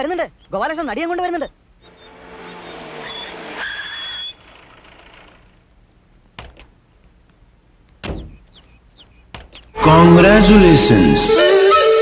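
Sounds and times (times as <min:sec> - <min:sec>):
brake squeal: 0:01.9 - 0:05.4.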